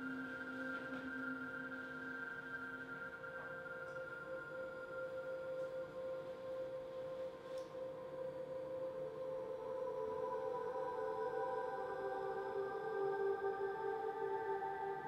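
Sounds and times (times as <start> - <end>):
ambient drone music: 0.0 - 15.0.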